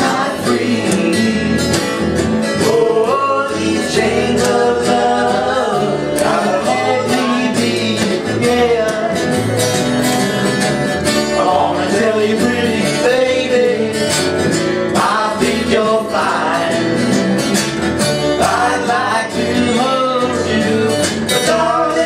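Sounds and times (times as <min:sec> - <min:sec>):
voices singing in harmony: 0:00.0 - 0:09.5, 0:11.3 - 0:22.0
acoustic bass guitar: 0:00.0 - 0:22.0
acoustic guitar strumming: 0:00.0 - 0:22.0.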